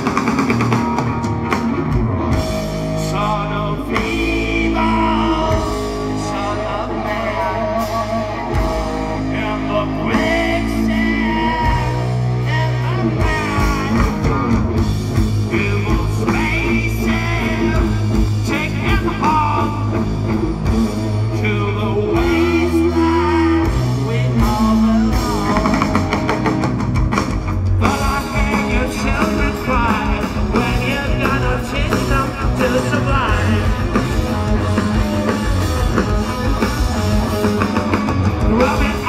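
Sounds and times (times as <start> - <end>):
bass guitar: 0.0 - 39.0
drum kit: 0.0 - 39.0
electric guitars: 0.0 - 39.0
person singing: 2.8 - 14.6, 21.3 - 26.5, 27.8 - 39.0.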